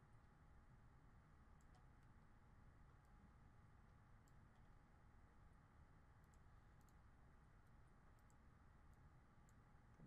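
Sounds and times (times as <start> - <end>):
faint room hum: 0.0 - 10.0
computer mouse clicks: 1.6 - 1.9, 8.2 - 8.4.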